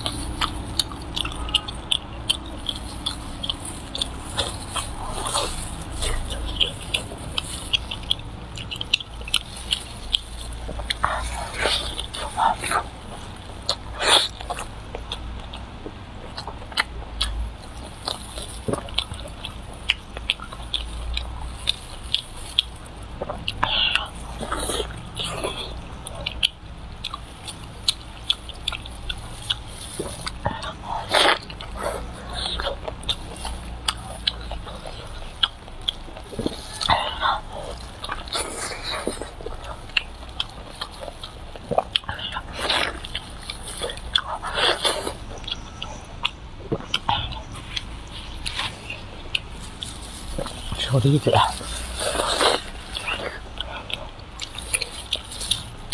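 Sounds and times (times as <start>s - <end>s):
wet mouth clicks and smacks: 0.0s - 50.8s
person chewing meat: 0.0s - 55.9s.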